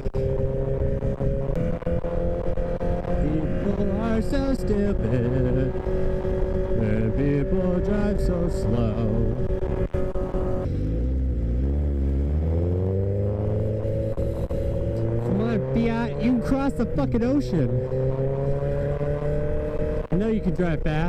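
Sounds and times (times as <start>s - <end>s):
motorcycle engine: 0.0s - 21.0s.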